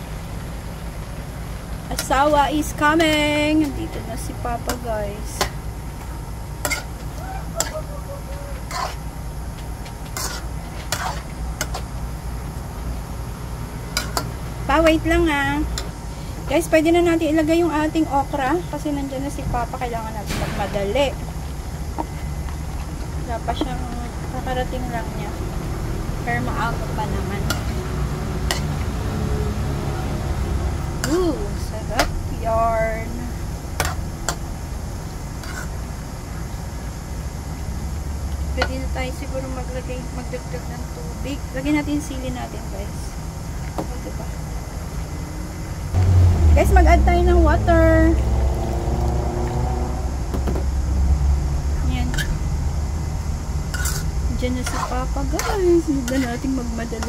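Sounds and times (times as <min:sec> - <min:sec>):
steady low rumble: 0:00.0 - 0:43.5, 0:44.4 - 0:57.0
spatula stirring vegetables in pan: 0:06.6 - 0:07.0, 0:08.6 - 0:09.1, 0:10.1 - 0:12.0, 0:35.4 - 0:35.9, 0:53.7 - 0:57.0.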